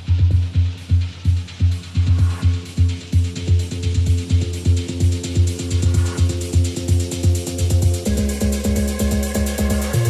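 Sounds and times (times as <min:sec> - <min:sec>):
kick drum: 0:00.0 - 0:10.0
ticking hi-hats: 0:00.0 - 0:10.0.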